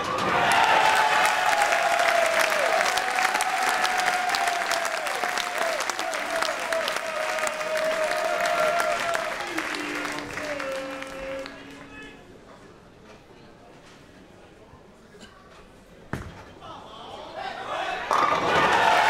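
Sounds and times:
audience applauding: 0:00.0 - 0:12.0, 0:18.5 - 0:19.0.

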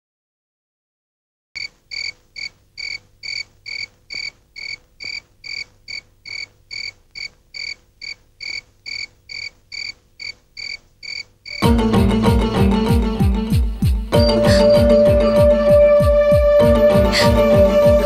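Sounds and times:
cricket chirping: 0:01.6 - 0:11.6
music: 0:11.6 - 0:18.0.

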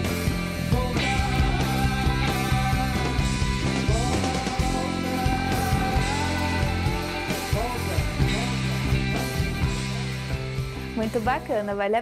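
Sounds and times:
electric guitars: 0:00.0 - 0:11.8
steady drum beat: 0:00.0 - 0:11.9.

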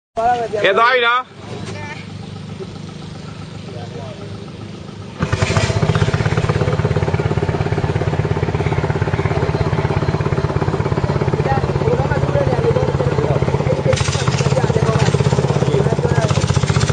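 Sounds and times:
boat engine chugging: 0:00.2 - 0:16.9.

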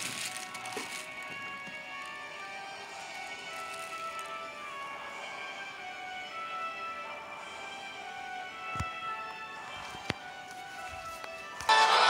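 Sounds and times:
dark background theme music: 0:00.0 - 0:12.0.

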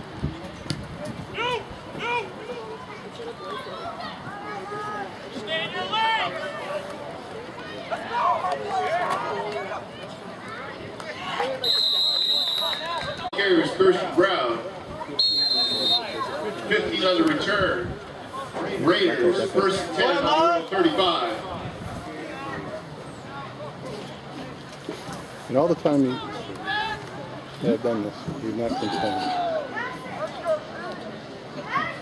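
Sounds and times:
crowd chatter: 0:00.0 - 0:32.0
players and spectators voices: 0:00.0 - 0:32.0
referee's whistle blasts: 0:11.6 - 0:13.2, 0:15.2 - 0:16.2.

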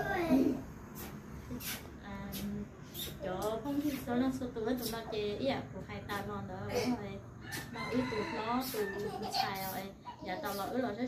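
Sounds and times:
rooster crowing: 0:07.4 - 0:09.2.

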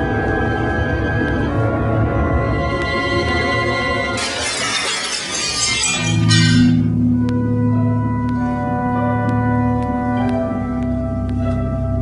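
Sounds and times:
glass shattering: 0:04.2 - 0:06.8.

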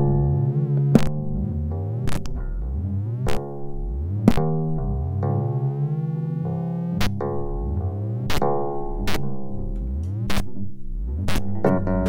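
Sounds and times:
rising bass sweeps: 0:00.0 - 0:12.0
sustained synthesizer tones: 0:00.0 - 0:12.0
sharp clicks: 0:00.8 - 0:01.2, 0:02.0 - 0:02.5, 0:07.0 - 0:07.3, 0:08.3 - 0:11.6.

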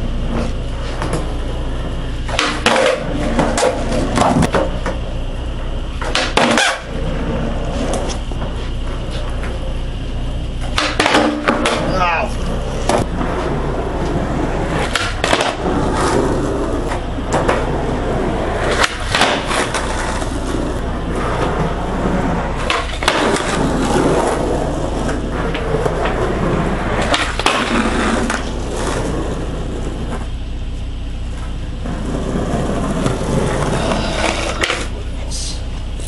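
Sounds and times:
skateboard wheels rolling on concrete: 0:00.0 - 0:36.0
skateboard popping and landing: 0:00.1 - 0:09.7, 0:10.6 - 0:30.4, 0:31.4 - 0:35.2.

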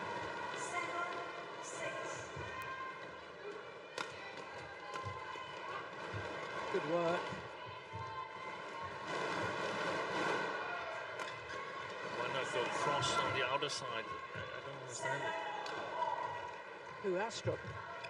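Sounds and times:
arena crowd noise: 0:00.0 - 0:18.0.

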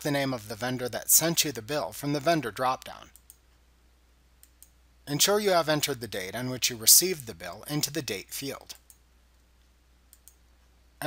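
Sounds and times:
faint mouse clicks: 0:04.4 - 0:04.8, 0:08.7 - 0:10.8.

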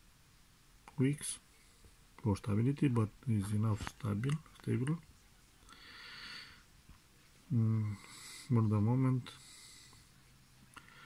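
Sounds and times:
faint breath: 0:05.6 - 0:06.7, 0:07.5 - 0:08.6, 0:09.3 - 0:11.0.

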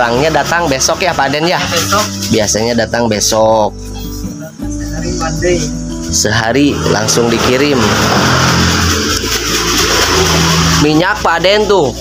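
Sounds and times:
vehicle passing: 0:06.3 - 0:12.0.

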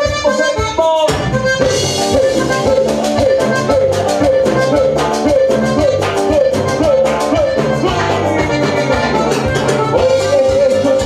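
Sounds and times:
accordion melody: 0:00.0 - 0:11.0
bass: 0:00.0 - 0:11.0
drum beat: 0:00.0 - 0:11.0.

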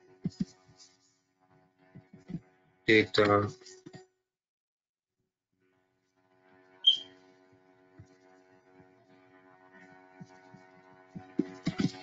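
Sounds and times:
sharp high-pitched chirp: 0:06.8 - 0:07.2.

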